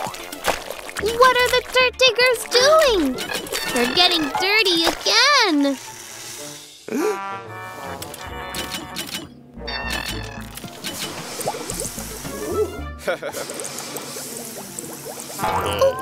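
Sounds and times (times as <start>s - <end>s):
cartoon background music: 0.0s - 16.0s.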